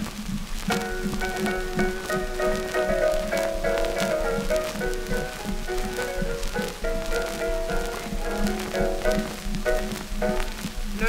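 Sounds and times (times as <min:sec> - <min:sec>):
record hiss and crackle: 0:00.0 - 0:11.0
instrumental music notes: 0:00.7 - 0:11.0.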